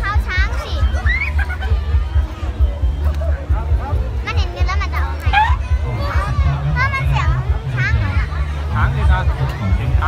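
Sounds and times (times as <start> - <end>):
music playing: 0.0 - 10.0.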